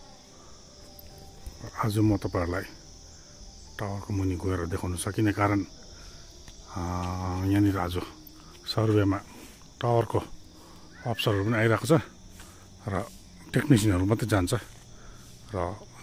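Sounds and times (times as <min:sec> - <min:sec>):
high-pitched insect chorus: 0:00.0 - 0:16.0
man talking: 0:01.6 - 0:02.8, 0:03.8 - 0:05.7, 0:06.7 - 0:09.2, 0:09.8 - 0:10.3, 0:11.0 - 0:12.1, 0:12.8 - 0:14.7, 0:15.5 - 0:16.0.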